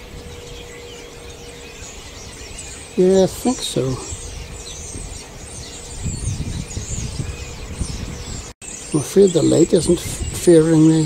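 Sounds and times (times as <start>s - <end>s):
high bird calls: 0.0s - 11.0s.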